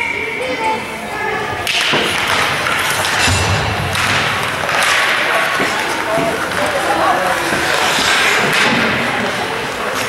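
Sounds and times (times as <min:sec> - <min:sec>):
spectators talking: 0:00.0 - 0:10.0
skates scraping on ice: 0:02.0 - 0:10.0
sticks and puck knocking: 0:03.9 - 0:08.9.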